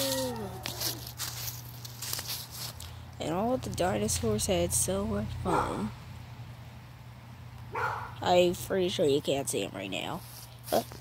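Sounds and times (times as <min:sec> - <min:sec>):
child speaking: 0:00.0 - 0:00.6, 0:03.2 - 0:05.9.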